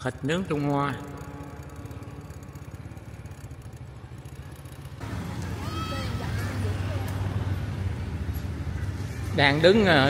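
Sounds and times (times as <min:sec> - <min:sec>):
small engine running: 0:00.0 - 0:10.0.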